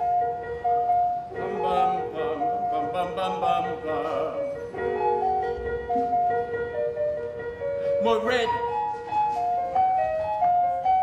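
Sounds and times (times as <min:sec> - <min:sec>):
piano melody: 0:00.0 - 0:11.0.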